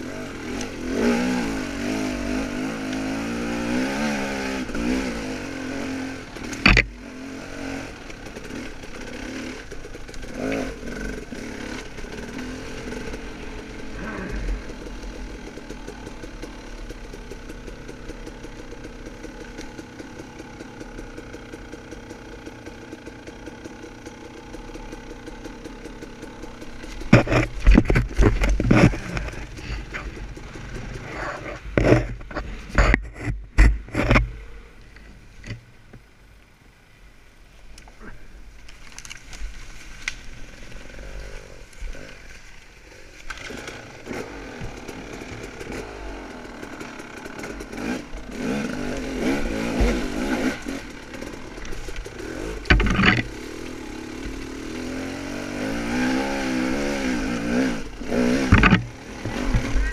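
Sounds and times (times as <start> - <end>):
motorcycle engine revving: 0.0 - 35.6, 40.0 - 59.9
knocks and clatter: 26.6 - 34.4, 49.6 - 53.4, 58.4 - 59.9.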